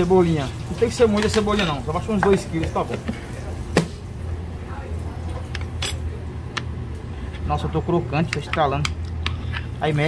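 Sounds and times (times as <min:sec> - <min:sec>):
beans frying in hot oil: 0:00.0 - 0:02.9
steady low hum: 0:01.7 - 0:10.0.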